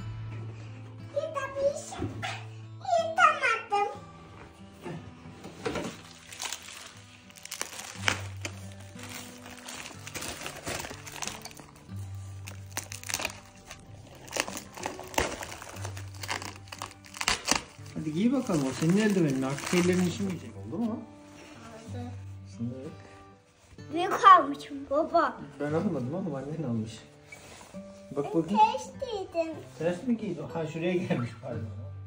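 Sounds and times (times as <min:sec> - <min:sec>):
soft background music: 0:00.0 - 0:32.0
plastic bag crinkling: 0:05.8 - 0:20.6.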